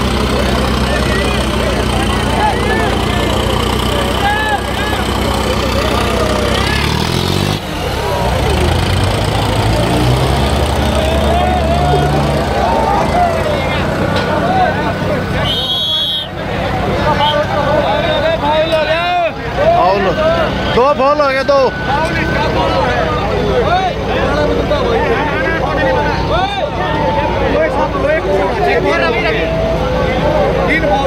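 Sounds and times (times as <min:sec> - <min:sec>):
crowd shouting: 0:00.0 - 0:31.0
tractor diesel engine running: 0:00.0 - 0:31.0.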